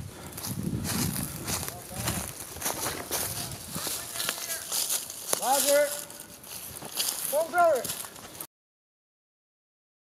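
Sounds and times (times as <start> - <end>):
footsteps crunching dry leaves: 0.1 - 8.5.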